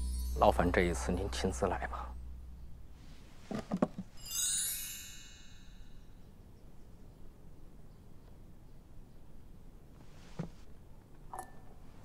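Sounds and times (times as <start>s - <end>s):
sparkling chime cascade: 0.0s - 1.5s, 4.2s - 6.2s.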